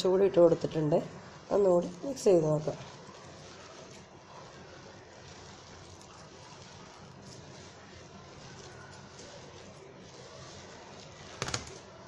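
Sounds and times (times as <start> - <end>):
hand mixing dough in plastic bowl: 0.0 - 12.0
low steady background noise: 0.0 - 12.0.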